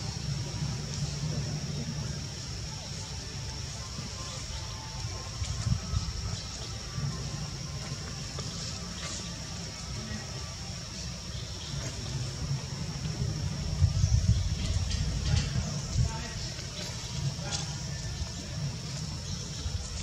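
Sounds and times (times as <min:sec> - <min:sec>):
faint voices: 0:00.0 - 0:20.0.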